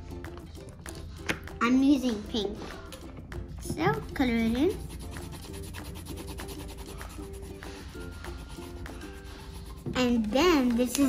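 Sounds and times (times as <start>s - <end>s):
marker scribbling on paper towel: 4.5s - 10.4s.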